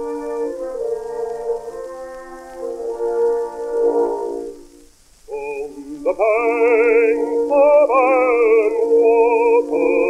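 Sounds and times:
record surface hiss: 0.0s - 10.0s
small orchestra playing slow melody: 0.0s - 10.0s.

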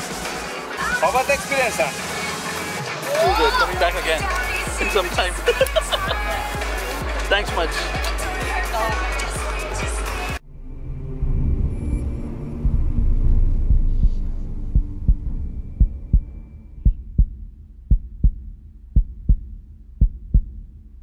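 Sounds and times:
low rumble: 10.4s - 21.0s
heartbeat thumps: 12.5s - 21.0s.

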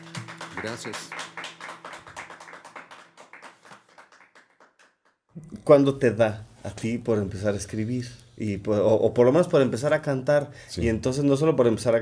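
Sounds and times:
applause: 0.0s - 5.3s.

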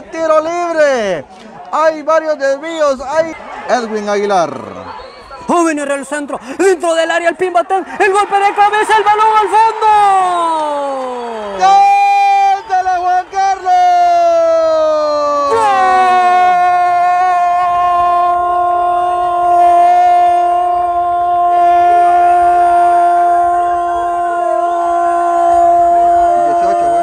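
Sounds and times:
commentator shouting goal: 5.6s - 10.8s.

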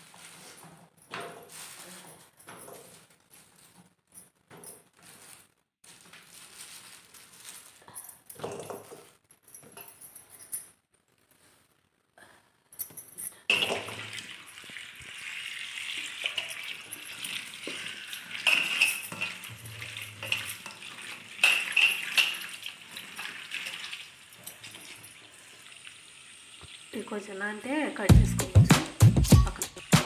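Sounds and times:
tap water running into steel bowl: 13.5s - 27.0s.

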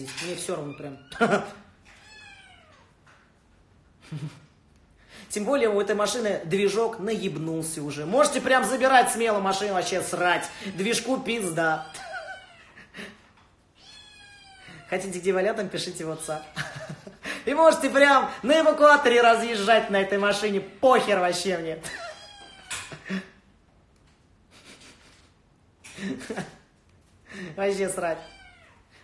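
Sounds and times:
cat meowing: 1.9s - 3.0s, 10.4s - 12.8s, 13.7s - 15.2s, 21.9s - 22.9s, 28.0s - 29.0s.

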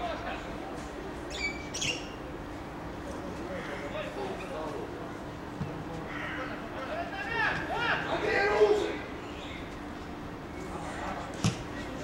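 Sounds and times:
distant outdoor background noise: 0.0s - 12.0s
bird chirping: 1.3s - 2.2s.

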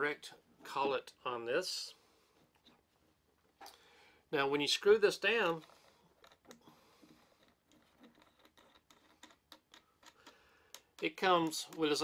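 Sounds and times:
small clicks of plastic screwing: 5.6s - 11.9s.

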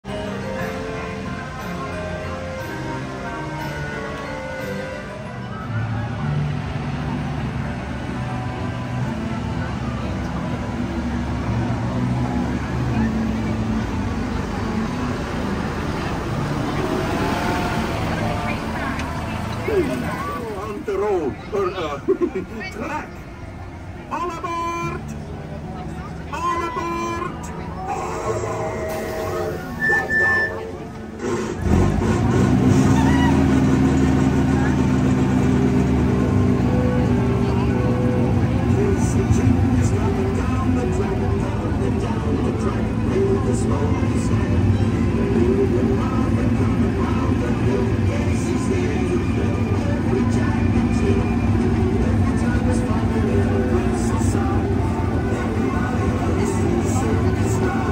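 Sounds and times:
background music: 0.0s - 57.9s
people's voices: 0.0s - 57.9s
ride train rolling on track: 0.0s - 57.9s.

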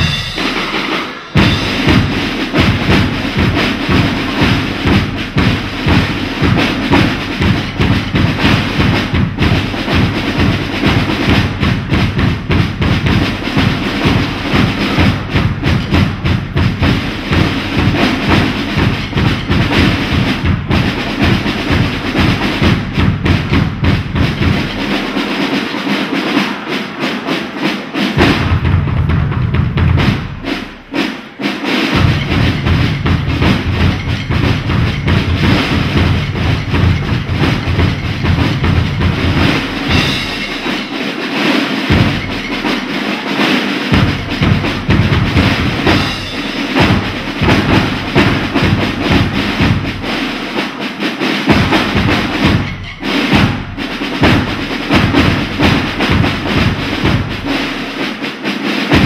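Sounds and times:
bass drum beat: 0.0s - 0.8s, 1.4s - 25.2s, 28.2s - 31.0s, 31.9s - 40.9s, 41.9s - 42.9s, 43.9s - 50.6s, 51.5s - 58.0s
rapid drumstick hits: 0.0s - 59.0s.

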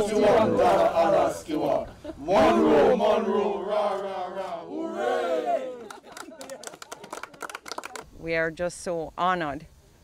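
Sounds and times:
people cheering and whooping: 4.6s - 8.0s
people laughing: 5.6s - 8.0s
people clapping: 5.6s - 8.1s.

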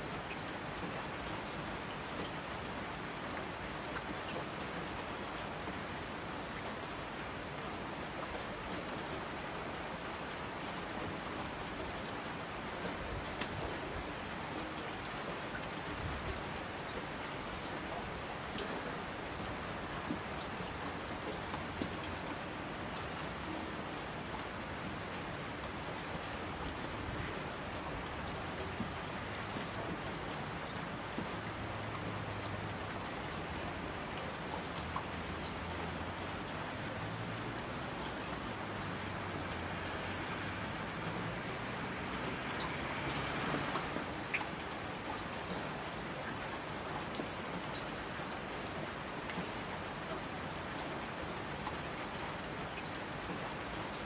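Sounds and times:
steady rain falling: 0.0s - 54.0s.

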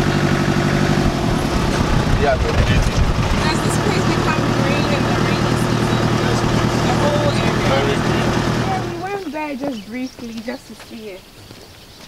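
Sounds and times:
vehicle engine low rumble: 0.0s - 10.5s
faint voices: 2.0s - 11.2s.

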